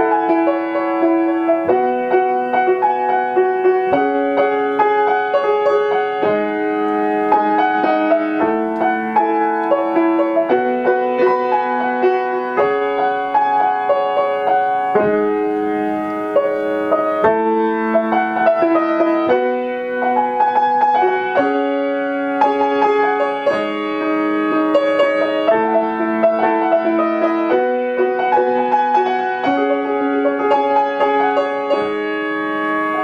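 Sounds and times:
solo piano: 0:00.0 - 0:33.0.

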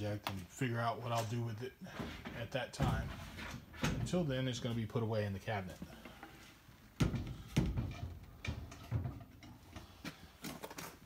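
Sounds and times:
knocks and bumps of handling: 0:07.0 - 0:11.0.

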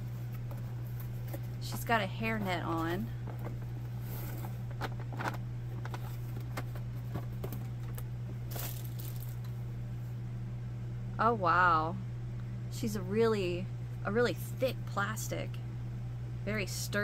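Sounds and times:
cardboard and packaging rustling: 0:00.0 - 0:09.6
low electrical hum: 0:00.0 - 0:17.0.

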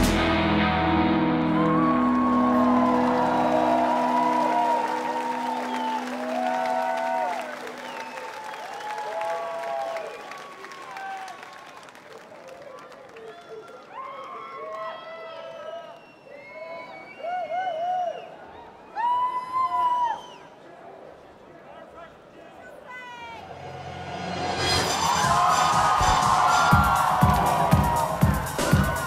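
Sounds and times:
rock band final chord: 0:00.0 - 0:07.8
crowd cheering and applauding: 0:00.0 - 0:20.2, 0:23.4 - 0:29.0.

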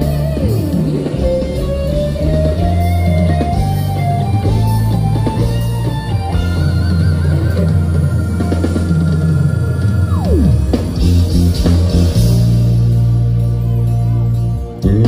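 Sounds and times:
live band over loud speakers: 0:00.0 - 0:15.0
high note sliding down: 0:06.4 - 0:13.4.

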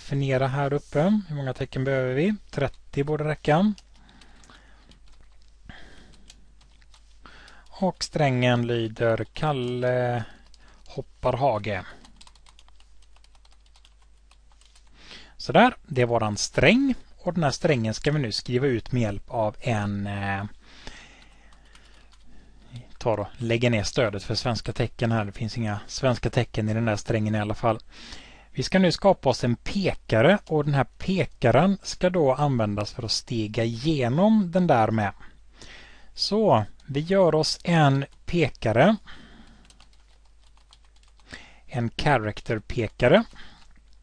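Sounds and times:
computer keyboard keystrokes: 0:12.0 - 0:14.9, 0:39.6 - 0:41.3.

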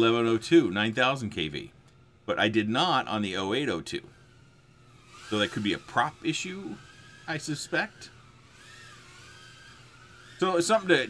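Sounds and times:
quadcopter motors whining: 0:00.0 - 0:01.2, 0:01.9 - 0:11.0.

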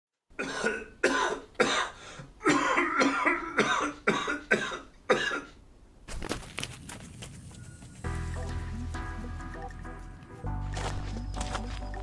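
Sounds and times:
person coughing: 0:00.4 - 0:05.6.

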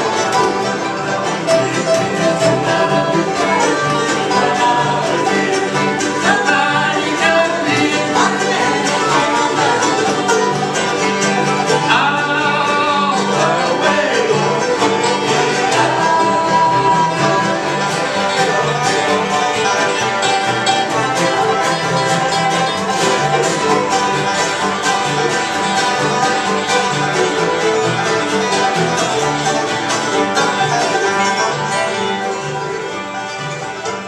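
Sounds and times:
acoustic guitars: 0:00.0 - 0:34.0
banjo picking: 0:00.0 - 0:34.0
fiddle: 0:00.0 - 0:34.0
upright bass: 0:00.0 - 0:34.0.

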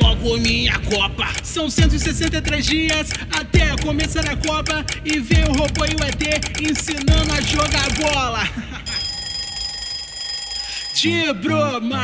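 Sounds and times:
person singing: 0:00.0 - 0:08.8, 0:10.8 - 0:12.0
alarm clock ring: 0:01.3 - 0:11.5.

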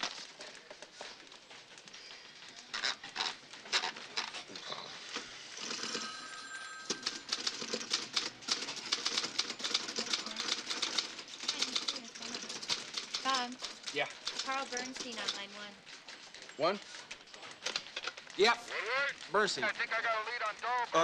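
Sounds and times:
typewriter keys typing: 0:05.6 - 0:06.1, 0:06.9 - 0:18.5.

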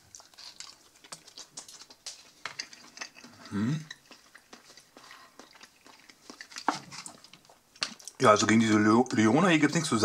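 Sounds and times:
chewing with wet mouth sounds: 0:00.0 - 0:08.2.

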